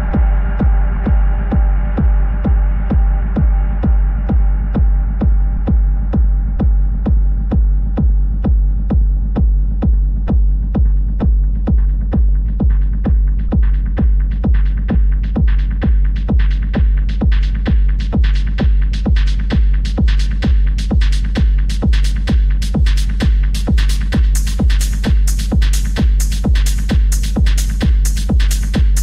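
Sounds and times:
deep bass: 0:00.0 - 0:29.0
techno kick drum: 0:00.0 - 0:29.0.

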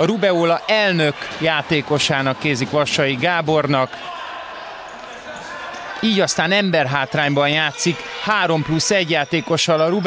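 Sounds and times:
sports hall noise: 0:00.0 - 0:10.0
ball played on hard court: 0:00.4 - 0:07.8.

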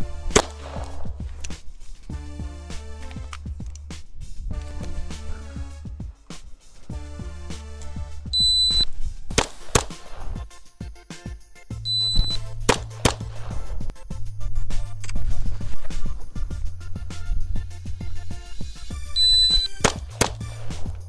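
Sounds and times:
background music with bass line: 0:00.0 - 0:21.0
pistol shots: 0:00.3 - 0:01.1, 0:09.3 - 0:10.3, 0:12.2 - 0:13.6, 0:19.5 - 0:20.9
shot timer beep: 0:08.4 - 0:08.9, 0:11.9 - 0:12.5, 0:19.1 - 0:19.9.

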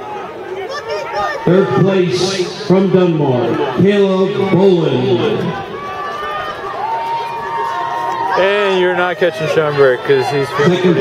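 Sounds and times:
distant spectators yelling: 0:00.0 - 0:11.0.

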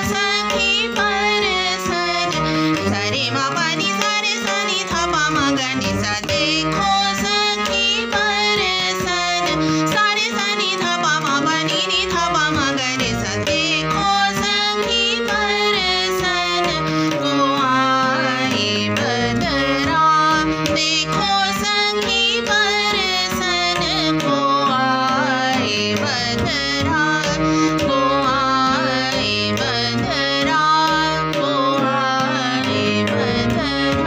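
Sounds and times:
harmonium: 0:00.0 - 0:34.0
woman singing: 0:00.0 - 0:34.0.

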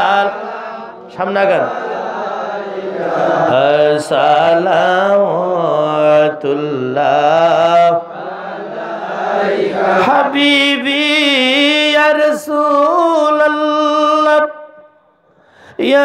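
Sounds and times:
man chanting into microphone: 0:00.0 - 0:02.7, 0:03.3 - 0:08.1, 0:09.8 - 0:14.8.

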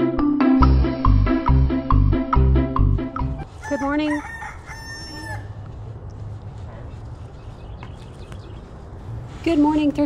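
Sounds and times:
rooster crowing: 0:03.5 - 0:05.7.

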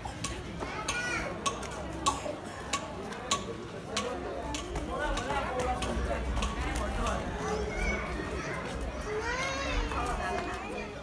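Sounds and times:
children's voices: 0:00.0 - 0:02.5, 0:07.0 - 0:11.0
crowd chatter: 0:00.0 - 0:11.0.

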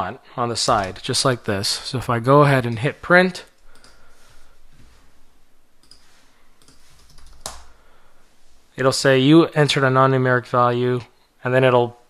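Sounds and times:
faint computer clicks: 0:03.6 - 0:04.0, 0:05.8 - 0:07.7.

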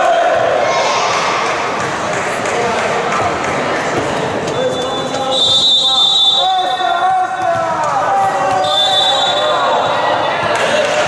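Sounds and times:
volleyball bouncing on wooden floor: 0:06.9 - 0:10.8.

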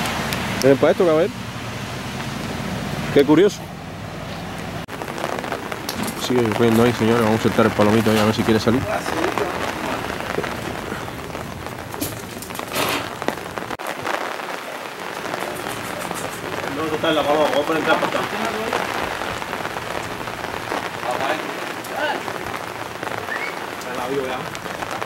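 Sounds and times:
rain pattering on umbrella: 0:04.6 - 0:25.0.

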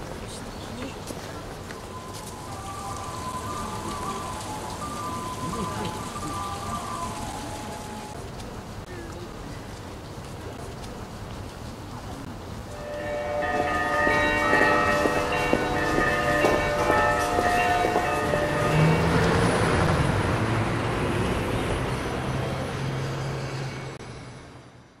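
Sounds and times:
bells ringing: 0:01.8 - 0:08.2, 0:12.8 - 0:20.8
heavy vehicle engine hum: 0:12.2 - 0:24.9.

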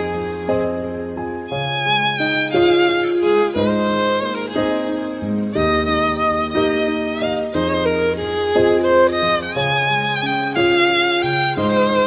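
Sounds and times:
bowed cello slow melody: 0:00.0 - 0:12.0.

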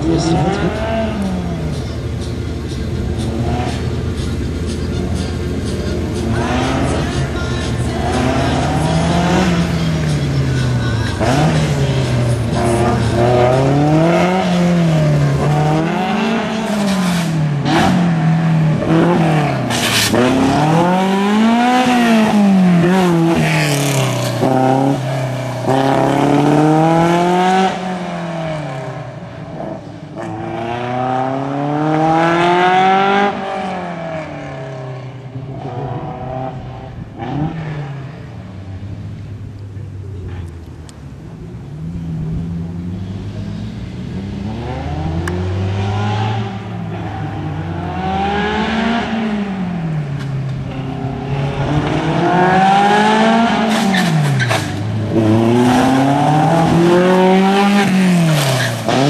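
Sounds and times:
racing car engine revving: 0:00.0 - 0:38.9, 0:41.8 - 0:59.0.

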